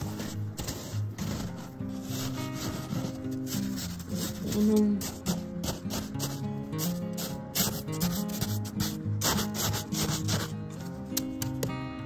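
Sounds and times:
plate scraping against snow: 0.0s - 10.6s
background music: 0.0s - 12.0s.

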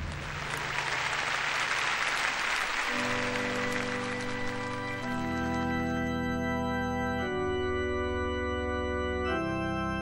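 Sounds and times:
audience applauding: 0.0s - 6.4s
held instrumental chord: 2.9s - 10.0s.

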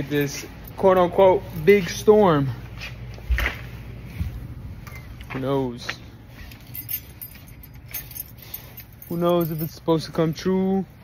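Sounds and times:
rustling and handling noise: 0.0s - 10.9s.

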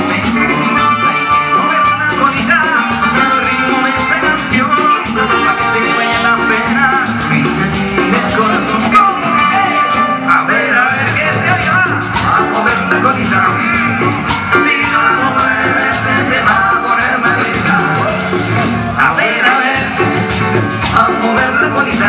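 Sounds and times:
latin dance band playing: 0.0s - 22.0s.

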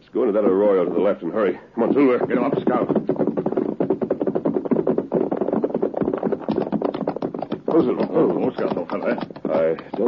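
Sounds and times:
horses galloping hoofbeats: 0.4s - 10.0s.

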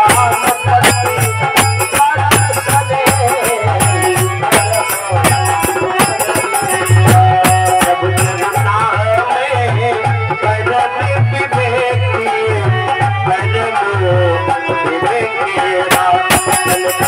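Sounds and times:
hand drum beat: 0.0s - 9.2s, 15.9s - 17.0s
harmonium melody: 0.0s - 17.0s.

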